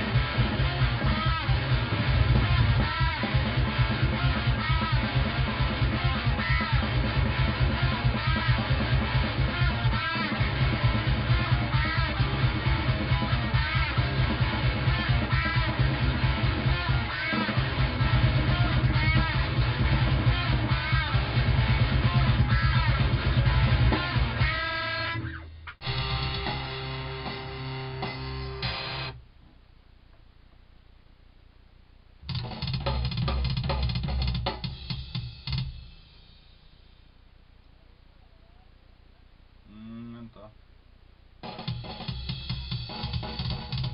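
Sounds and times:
heavy death metal music: 0.0s - 24.6s, 25.8s - 29.2s.

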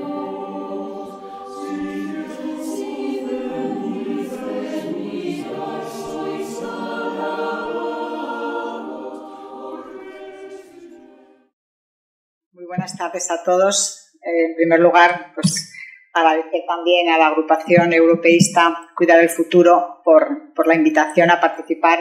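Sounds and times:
choir singing in harmony: 0.0s - 11.5s.

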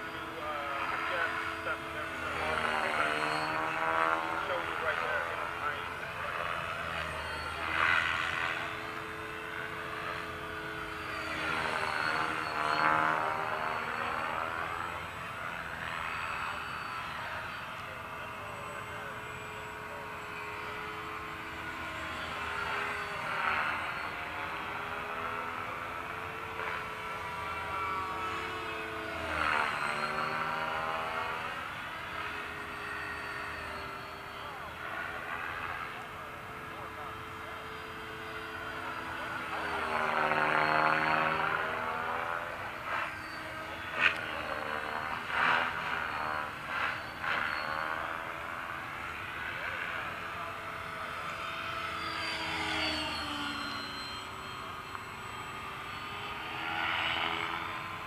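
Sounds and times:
model helicopter motor and rotor whine: 0.0s - 58.0s.

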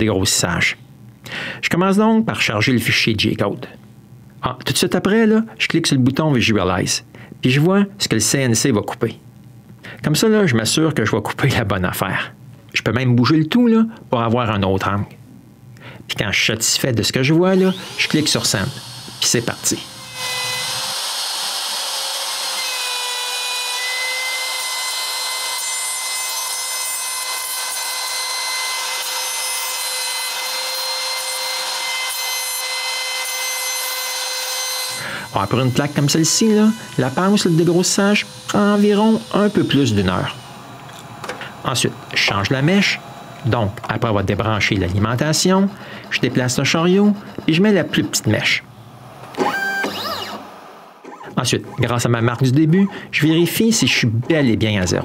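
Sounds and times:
router spindle whine: 17.3s - 52.0s
hiss of wood cutting: 17.5s - 22.6s, 34.4s - 43.6s, 48.7s - 51.2s.

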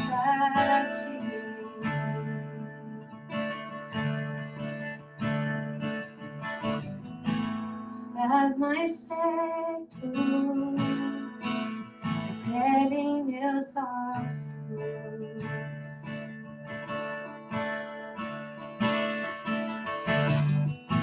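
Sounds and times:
woman singing a worship song: 0.0s - 3.0s, 7.9s - 11.4s, 12.4s - 15.7s
strummed acoustic guitar: 0.0s - 21.0s.

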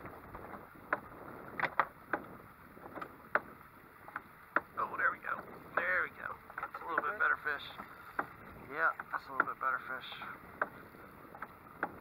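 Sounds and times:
wind: 0.0s - 12.0s
knocks on a boat: 0.4s - 12.0s.

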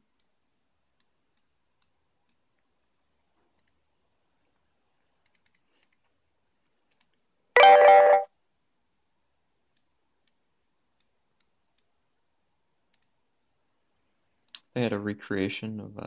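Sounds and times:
faint computer mouse clicks: 3.5s - 3.8s, 5.2s - 6.2s, 9.7s - 10.4s, 11.0s - 11.9s, 12.9s - 13.2s
multi-tone chime: 7.6s - 8.3s.

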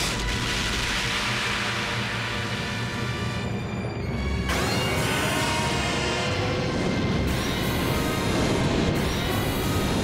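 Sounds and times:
drama score music: 0.0s - 10.0s.

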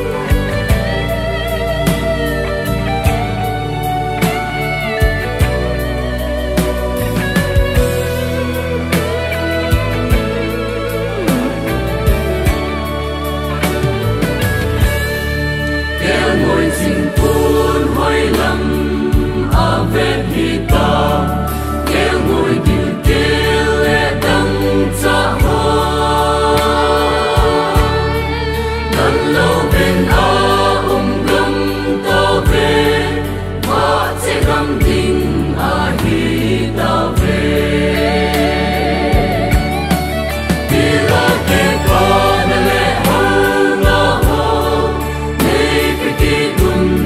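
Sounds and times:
instrumental backing with bass: 0.0s - 47.0s
mixed choir singing a hymn: 6.6s - 47.0s.

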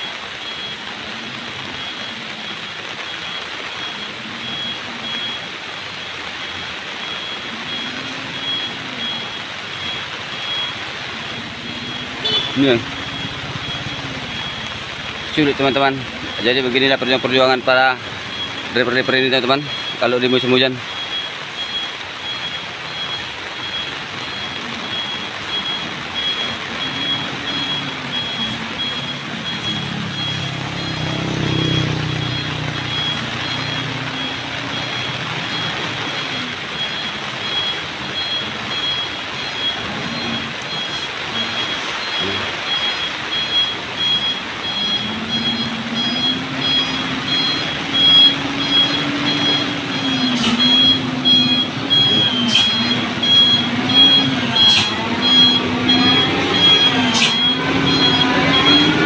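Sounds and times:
diesel truck engine labouring: 0.0s - 59.0s
electronic beeper pulsing: 1.8s - 59.0s.

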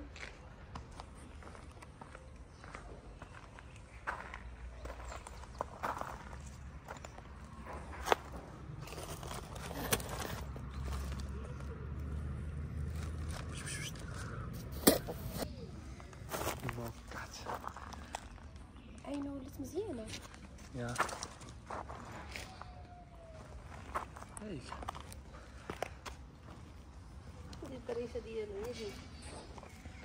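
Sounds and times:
footsteps on rubble: 0.0s - 11.6s, 20.0s - 22.7s.

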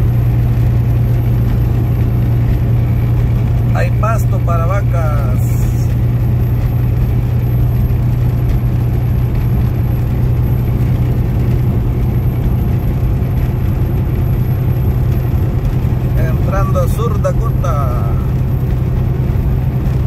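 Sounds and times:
vehicle engine and road drone: 0.0s - 20.0s.

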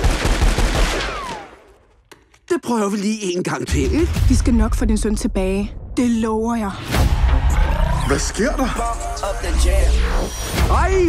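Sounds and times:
cartoon gunfire volley: 0.0s - 1.7s.

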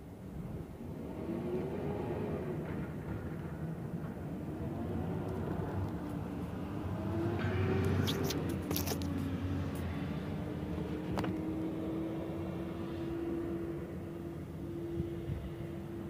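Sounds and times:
engine and road rumble: 0.0s - 16.0s.

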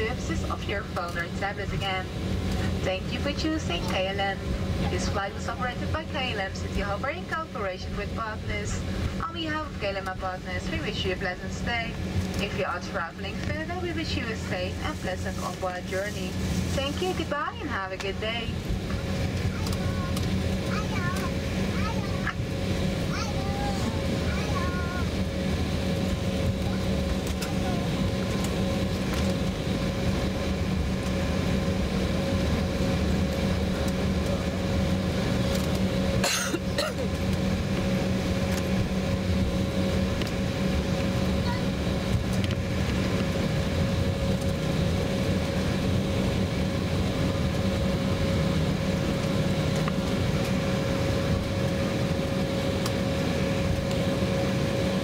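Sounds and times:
cabin air hum: 0.0s - 55.0s
jet engines idling: 0.0s - 55.0s.

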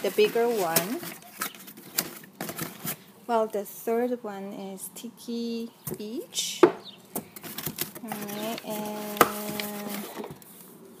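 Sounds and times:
packing paper rustling: 0.0s - 3.1s, 7.2s - 10.7s.

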